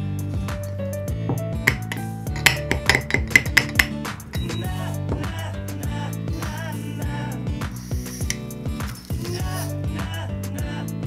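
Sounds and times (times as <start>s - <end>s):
background music: 0.0s - 11.0s
metal spoon clinking on glass jar: 1.7s - 4.5s.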